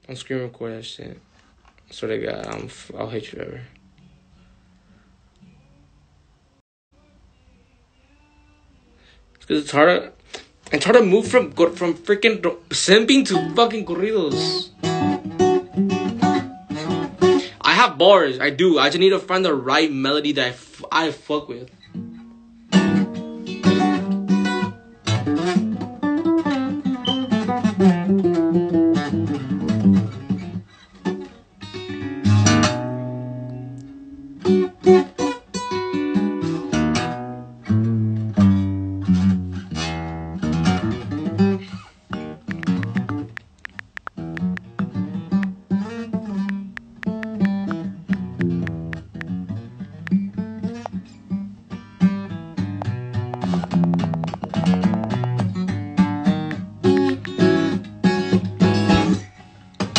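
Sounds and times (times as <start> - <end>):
acoustic guitar playing: 13.3 - 17.5, 21.9 - 59.2.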